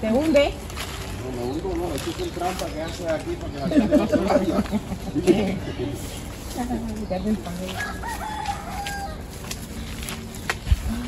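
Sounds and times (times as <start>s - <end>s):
rooster crowing: 7.7s - 9.4s.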